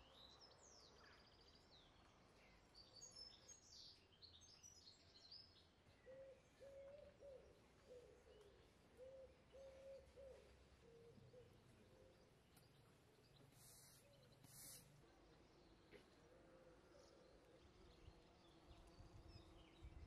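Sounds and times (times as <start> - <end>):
low cooing bird call: 6.0 - 12.4
small bird chirping: 12.2 - 15.8.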